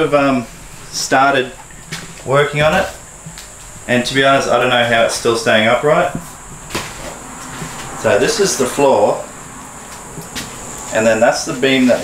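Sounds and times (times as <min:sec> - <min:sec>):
faint high whine: 0:00.0 - 0:12.0.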